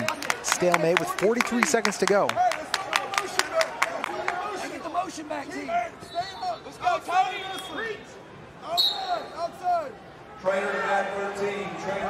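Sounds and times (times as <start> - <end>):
light crowd noise: 0.0 - 12.0.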